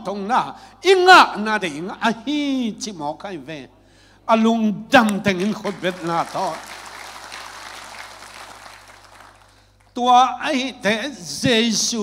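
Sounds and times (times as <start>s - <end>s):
congregation applauding: 5.3s - 10.0s.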